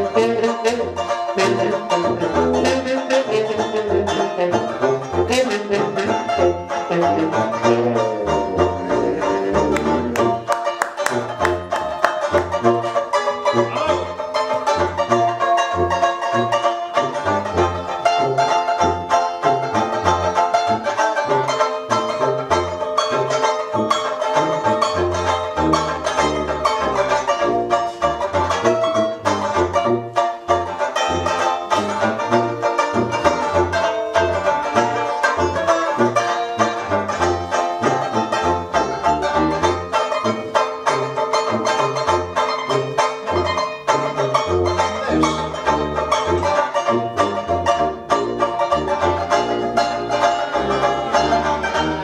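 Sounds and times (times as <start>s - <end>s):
strummed banjo chords: 0.0s - 52.0s
trombone: 0.0s - 52.0s
tuba bass line: 0.0s - 52.0s.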